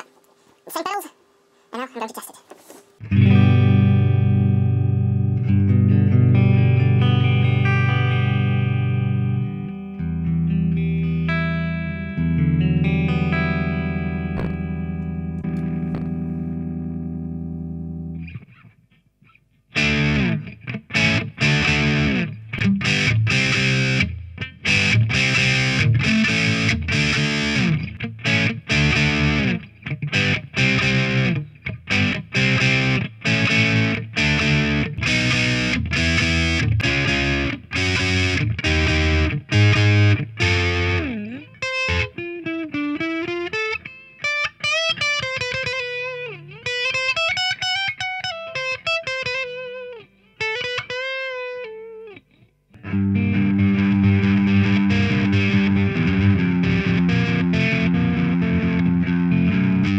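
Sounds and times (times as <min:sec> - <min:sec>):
choppy guitar chugging riff: 0:03.0 - 0:18.6, 0:19.8 - 0:47.1, 0:52.8 - 0:59.9
distorted electric guitar chords: 0:03.0 - 0:18.6, 0:19.7 - 0:52.2, 0:52.8 - 0:59.9.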